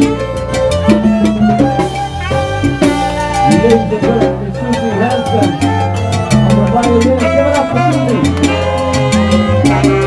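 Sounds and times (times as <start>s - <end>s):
bass line: 0.0s - 10.0s
keyboard: 0.0s - 10.0s
percussion strikes: 0.0s - 10.0s
salsa band playing: 0.0s - 10.0s
horns: 7.2s - 10.0s.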